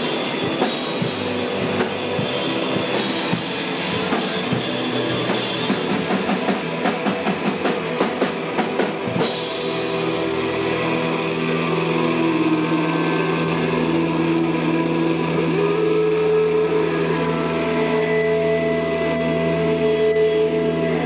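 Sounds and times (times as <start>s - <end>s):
distorted guitar and bass drone: 0.0s - 21.0s.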